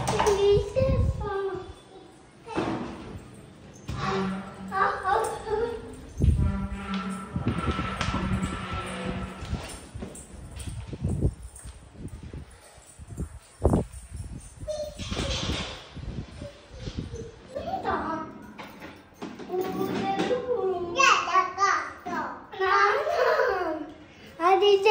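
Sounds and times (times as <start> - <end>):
voices: 3.9 - 9.3.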